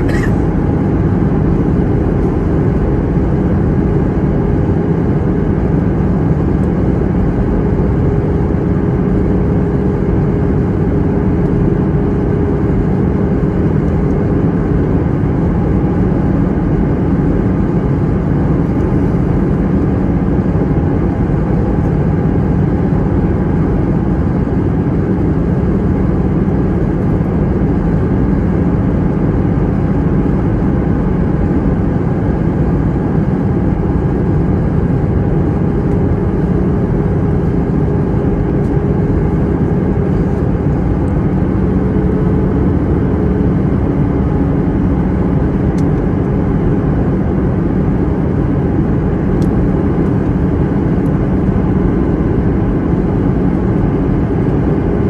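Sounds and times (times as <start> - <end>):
aircraft cabin engine rumble: 0.0 - 55.0.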